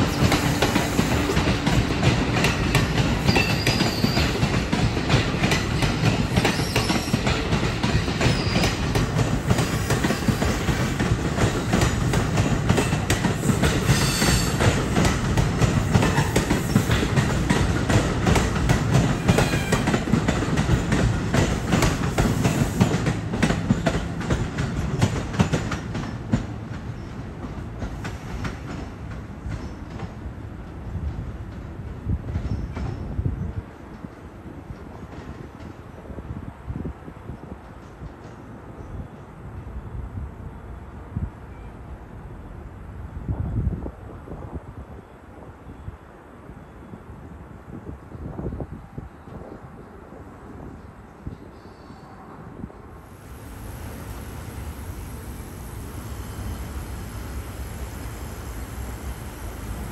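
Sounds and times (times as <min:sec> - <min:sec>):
train coaches rumbling past: 0:00.0 - 0:43.0, 0:48.8 - 0:59.9
wheel squeals: 0:03.2 - 0:04.4.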